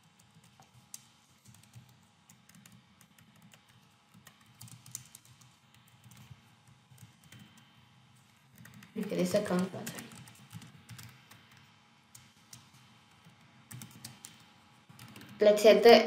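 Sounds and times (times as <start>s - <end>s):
faint keyboard typing: 0.0s - 15.8s.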